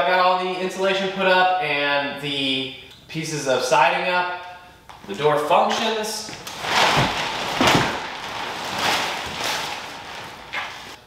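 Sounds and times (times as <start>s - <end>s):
heavy metal door scraping: 6.4s - 11.0s.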